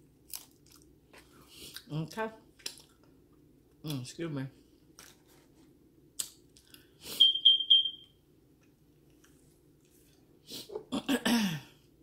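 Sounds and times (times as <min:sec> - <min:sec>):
electronic beeper short high beeps: 0:07.2 - 0:08.1.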